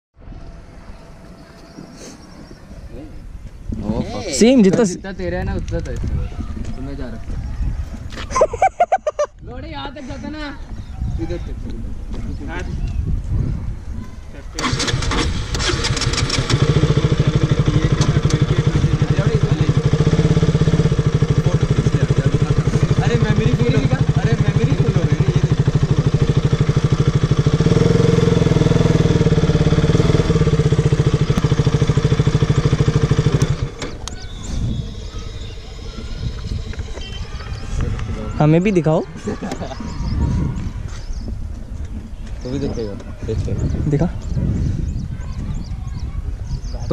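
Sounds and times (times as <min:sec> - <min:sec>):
motorcycle engine idling: 0:14.6 - 0:37.9.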